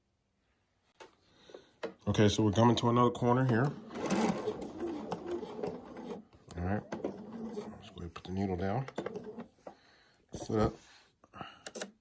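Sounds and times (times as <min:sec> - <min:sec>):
sewing machine stitching: 0:03.3 - 0:08.0, 0:08.8 - 0:09.6.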